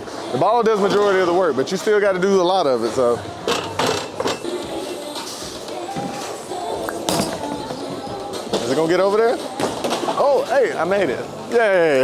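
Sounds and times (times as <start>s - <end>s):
echoing background music: 2.9s - 12.0s.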